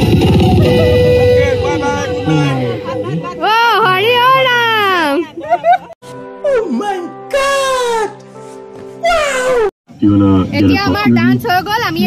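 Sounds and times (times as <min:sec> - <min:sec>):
background music: 0:00.0 - 0:11.6
woman talking: 0:03.3 - 0:05.6, 0:10.5 - 0:12.0
man's high-pitched comic cry: 0:06.5 - 0:08.2, 0:09.0 - 0:09.7.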